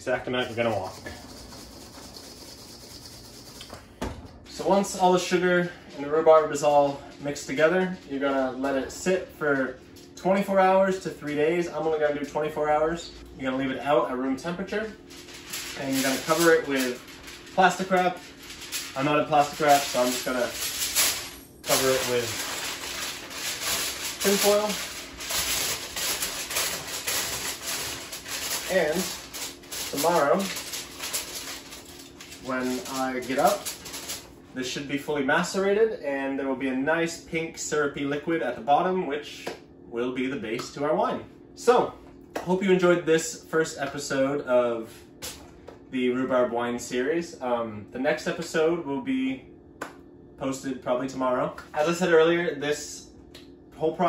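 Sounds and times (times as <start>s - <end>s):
tin foil crinkling: 0.4s - 3.6s, 14.6s - 34.4s
rhubarb rustling in steel bowl: 14.7s - 34.4s.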